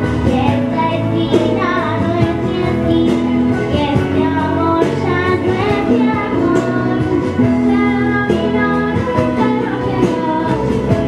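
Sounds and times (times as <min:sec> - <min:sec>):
girl singing into microphone: 0:00.0 - 0:11.0
instrumental accompaniment: 0:00.0 - 0:11.0.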